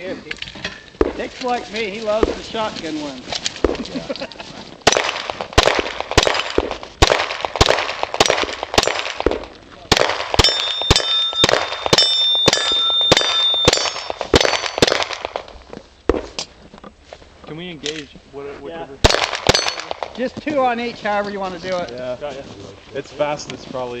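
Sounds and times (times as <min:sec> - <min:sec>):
rapid gunshots: 0:04.8 - 0:15.5, 0:19.0 - 0:20.1
steel targets ringing: 0:10.4 - 0:15.0, 0:19.5 - 0:19.9.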